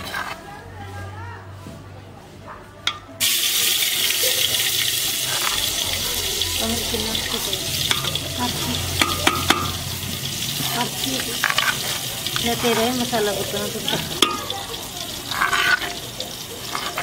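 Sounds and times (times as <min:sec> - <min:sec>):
metal ladles clinking on pot: 0:02.9 - 0:17.0
loud sizzle in pot: 0:03.2 - 0:17.0.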